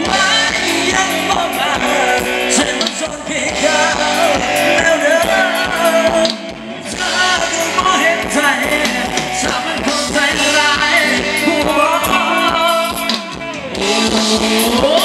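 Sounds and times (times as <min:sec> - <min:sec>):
live band playing dance song: 0:00.0 - 0:15.0
person singing: 0:00.0 - 0:15.0.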